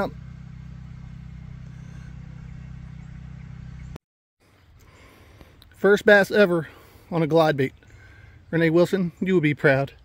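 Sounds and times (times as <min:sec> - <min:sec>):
steady low hum: 0:00.0 - 0:04.0.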